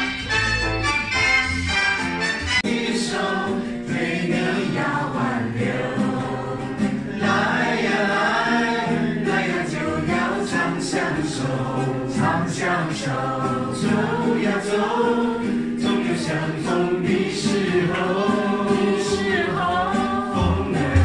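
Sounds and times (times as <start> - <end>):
acoustic guitar: 0.0 - 21.0
people singing: 1.1 - 21.0.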